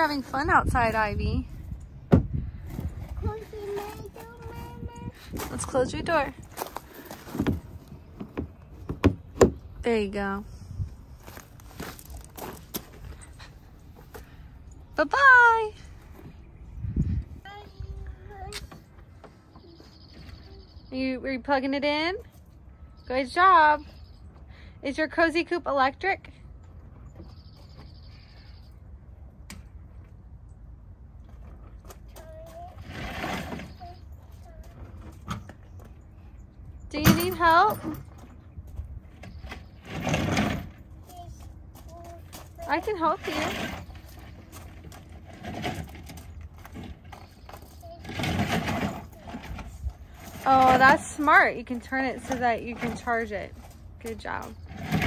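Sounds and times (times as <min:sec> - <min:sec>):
small footsteps crunching on gravel: 0:06.4 - 0:08.0, 0:11.0 - 0:13.6, 0:40.9 - 0:43.2, 0:43.8 - 0:47.9
plastic toy car wheels on gravel: 0:11.2 - 0:13.0
faint distant bird calls: 0:15.8 - 0:21.3, 0:26.5 - 0:29.2.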